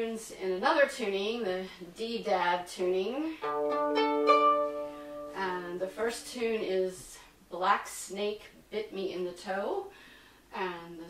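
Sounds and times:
fiddle double stop: 3.4 - 5.5.

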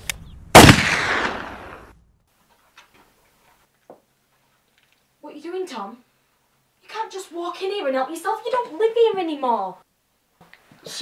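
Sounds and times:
gunshot with echo: 0.6 - 1.9.

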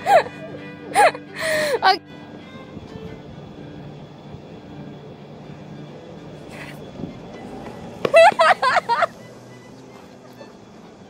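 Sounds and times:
low outdoor hum: 0.0 - 11.0.

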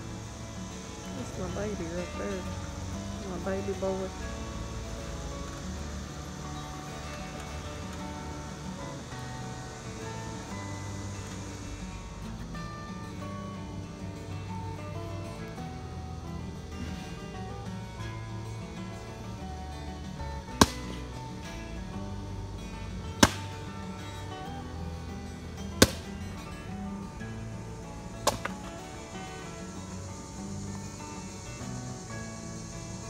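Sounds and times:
background music: 0.0 - 33.0
sharp blows of a tool: 20.6 - 21.0, 23.2 - 23.6, 25.8 - 26.2, 28.2 - 28.8.

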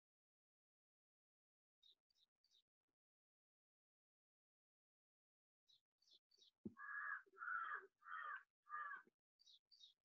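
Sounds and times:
crow cawing: 6.8 - 9.1.

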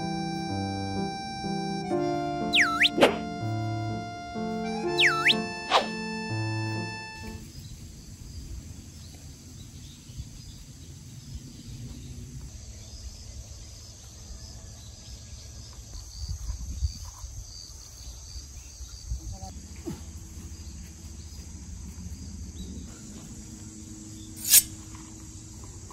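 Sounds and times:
background music: 0.0 - 7.4
insects droning: 0.0 - 25.9
swooping sound effect: 2.3 - 4.0, 4.7 - 7.4.

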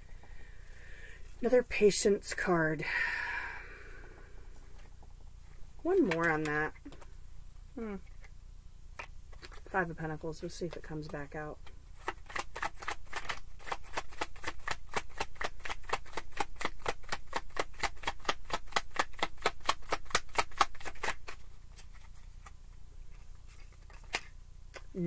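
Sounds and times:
cards being shuffled: 12.0 - 25.0.

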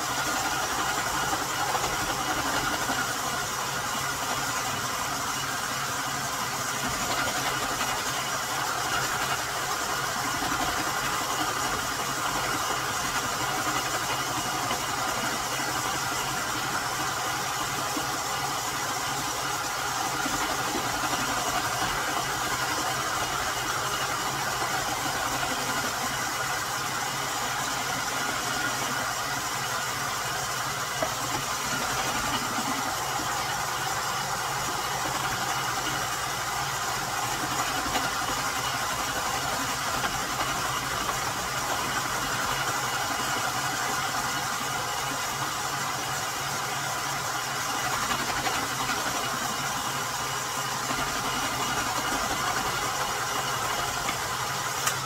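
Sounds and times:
machine humming: 0.0 - 55.0.

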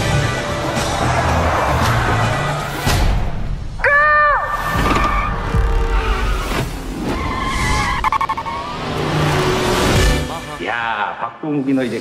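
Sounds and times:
music: 0.0 - 6.4, 9.1 - 12.0.

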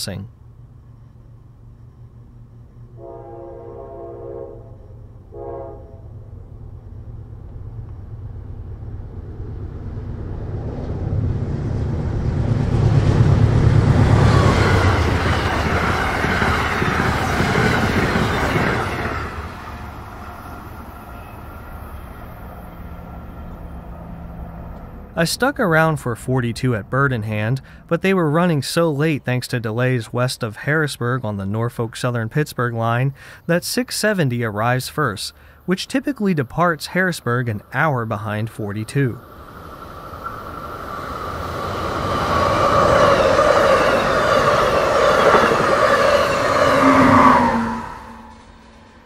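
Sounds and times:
passing train rumble: 0.0 - 31.7, 36.4 - 49.0
locomotive horn blasts: 2.9 - 6.3.

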